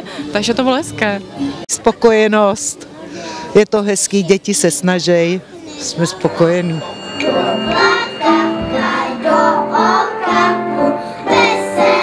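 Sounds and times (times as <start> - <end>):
young children singing: 7.2 - 12.0.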